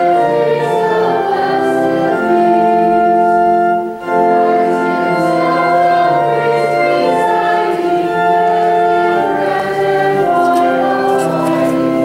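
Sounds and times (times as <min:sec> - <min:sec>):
held hymn chords: 0:00.0 - 0:12.0
voices singing: 0:00.0 - 0:12.0.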